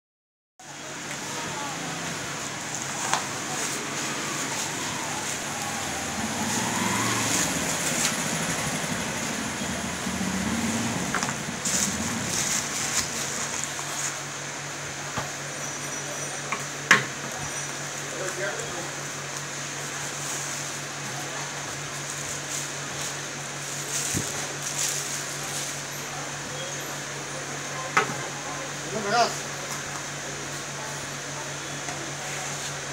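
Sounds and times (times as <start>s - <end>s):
indistinct voices: 0.7s - 14.4s.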